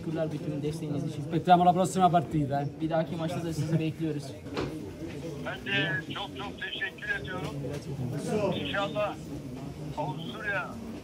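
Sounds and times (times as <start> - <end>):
murmur of crowded room: 0.0 - 11.0
man talking through phone speaker: 5.4 - 7.6, 8.3 - 9.2, 10.1 - 10.8.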